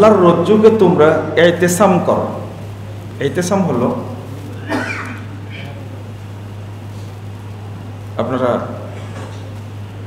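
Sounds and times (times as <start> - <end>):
steady low hum: 0.0 - 10.0
man speaking: 3.2 - 4.6.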